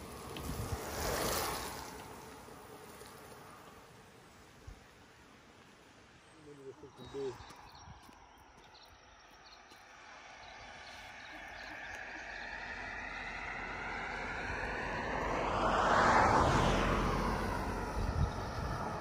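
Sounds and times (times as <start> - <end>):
vehicle passing: 0.0 - 4.2, 9.6 - 19.0.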